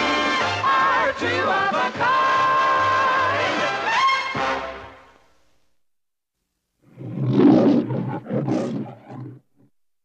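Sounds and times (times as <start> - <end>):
lion roaring: 6.8 - 9.7.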